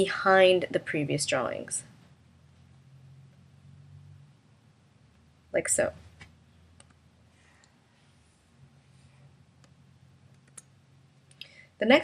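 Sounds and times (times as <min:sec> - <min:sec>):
person speaking: 0:00.0 - 0:02.0
low steady hum: 0:00.0 - 0:12.0.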